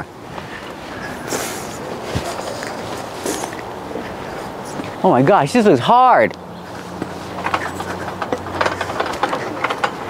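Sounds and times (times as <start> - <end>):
metal climbing equipment clanking: 6.7 - 10.0.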